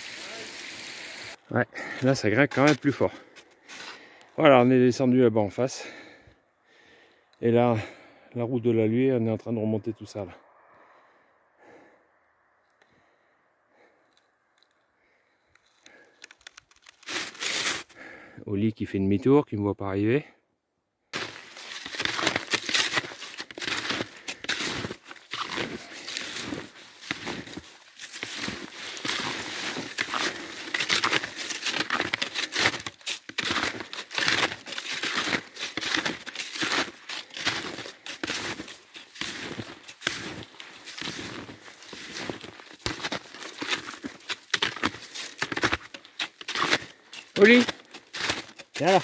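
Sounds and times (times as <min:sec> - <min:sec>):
footsteps crunching through snow: 0:00.0 - 0:04.2, 0:16.7 - 0:18.0, 0:21.1 - 0:49.0.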